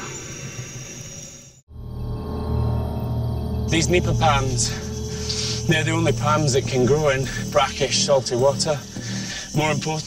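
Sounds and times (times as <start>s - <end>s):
insects droning: 0.0s - 10.0s
low rumble: 1.7s - 8.1s.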